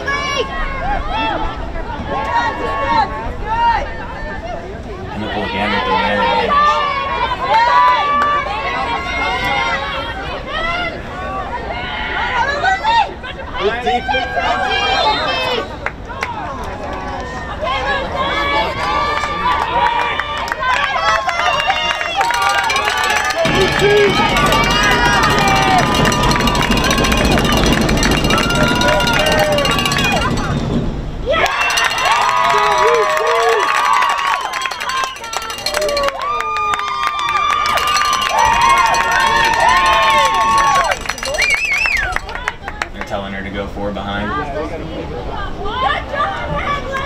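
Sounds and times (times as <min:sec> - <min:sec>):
people shouting and calling out: 0:00.0 - 0:30.6, 0:44.2 - 0:47.0
low rumble: 0:23.4 - 0:31.4.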